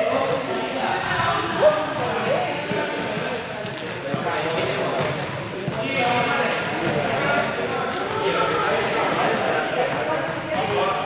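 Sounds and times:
group voices echoing in hall: 0.0s - 11.0s.

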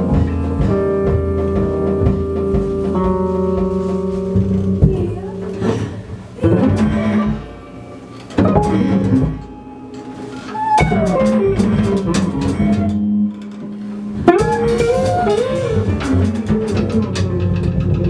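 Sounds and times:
electric guitar chords: 0.0s - 16.8s
bass: 0.0s - 18.0s
drum kit: 0.0s - 18.0s.

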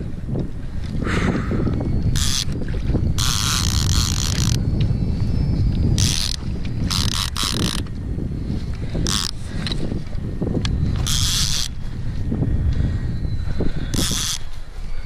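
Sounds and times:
wind rumble on microphone: 0.0s - 15.0s
fishing reel drag buzzing: 1.9s - 12.3s, 13.0s - 15.0s.

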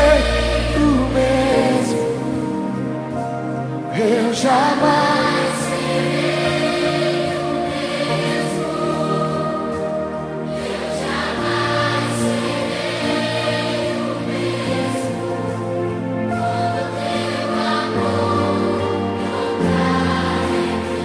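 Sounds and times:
children's choir singing: 0.0s - 2.7s, 4.0s - 21.0s
instrumental accompaniment: 0.0s - 21.0s.

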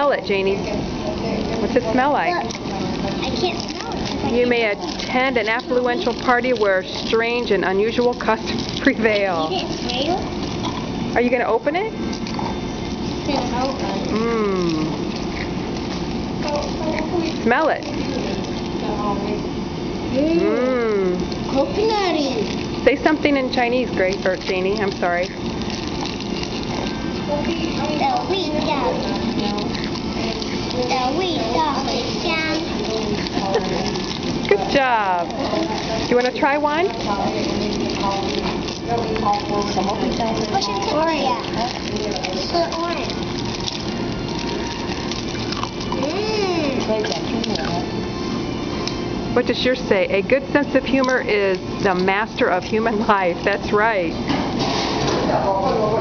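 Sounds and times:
steady room noise: 0.0s - 56.0s
girl speaking: 3.2s - 4.4s, 9.3s - 10.4s, 13.2s - 14.9s, 16.4s - 17.4s, 20.1s - 20.9s, 21.5s - 22.6s, 27.3s - 29.5s, 30.8s - 32.8s, 40.5s - 41.7s, 42.4s - 43.2s, 46.0s - 47.2s.

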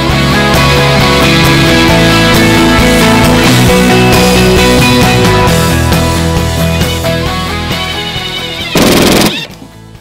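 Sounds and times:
rock music: 0.0s - 10.0s.

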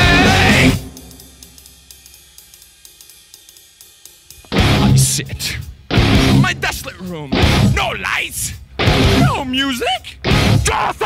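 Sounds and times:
metal band with distorted guitars: 0.0s - 1.7s, 4.4s - 11.0s
hi-hat ticking: 0.0s - 10.8s.

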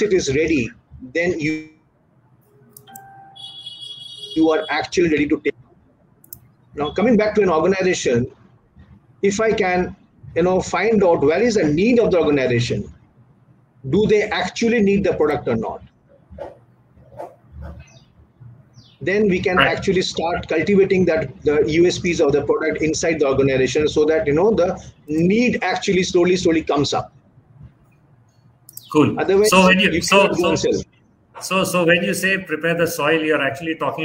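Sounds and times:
soft clicks: 2.4s - 3.2s, 6.2s - 6.6s
electronic chime-like tones: 2.5s - 4.5s
high falling chirp: 2.5s - 4.7s.

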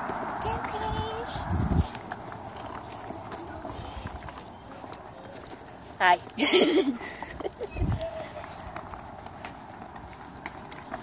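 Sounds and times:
footsteps on concrete: 0.0s - 11.0s
voices: 0.3s - 9.3s.

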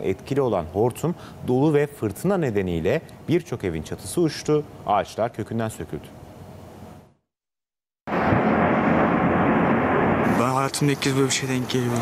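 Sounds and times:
storm wind rushing: 8.1s - 11.0s.

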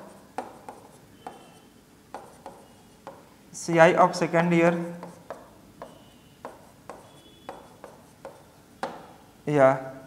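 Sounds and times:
chalk scraping: 0.0s - 3.2s, 4.7s - 8.6s
chalk tapping on blackboard: 0.0s - 3.3s, 4.7s - 9.2s.

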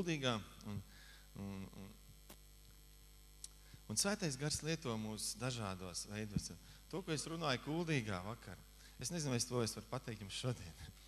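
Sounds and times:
low electrical mains hum: 0.0s - 11.0s
man humming briefly: 0.6s - 2.0s.

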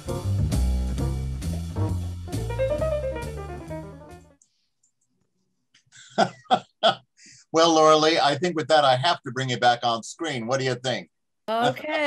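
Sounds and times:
man's voice bursts: 6.1s - 11.0s, 11.6s - 11.9s.

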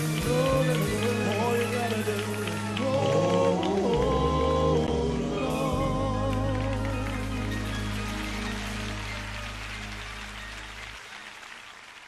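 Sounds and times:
gospel band chord: 0.0s - 10.9s
audience applause: 0.0s - 12.0s.

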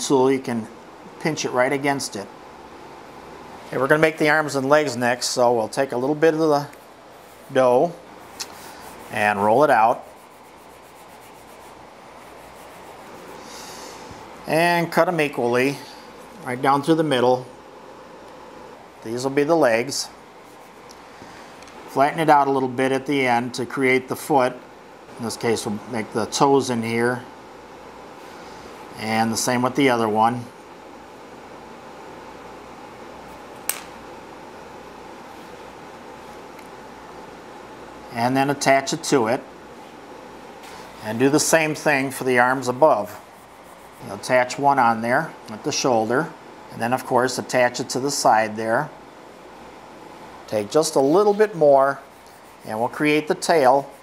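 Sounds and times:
faint room hum: 0.0s - 54.0s
fingers rolling clay on table: 52.0s - 54.0s.

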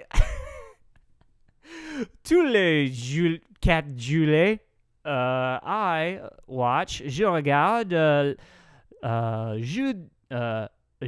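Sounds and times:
man exhaling breathily: 1.6s - 2.2s
man speaking: 2.2s - 10.8s.

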